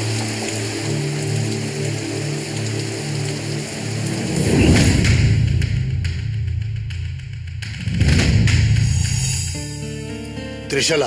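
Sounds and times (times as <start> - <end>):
steady hissing texture: 0.0 - 6.7, 8.5 - 9.8
low drone notes: 0.0 - 9.6.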